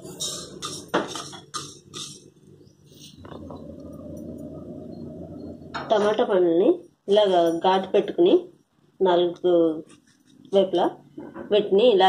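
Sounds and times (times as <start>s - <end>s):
steady low hum: 0.0s - 11.7s.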